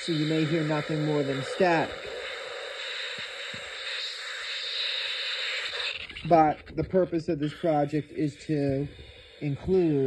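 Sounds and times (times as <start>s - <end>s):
radio static hiss: 0.0s - 10.0s.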